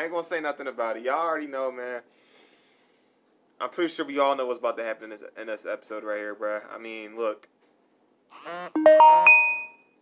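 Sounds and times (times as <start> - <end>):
rising musical chime: 8.8 - 9.8.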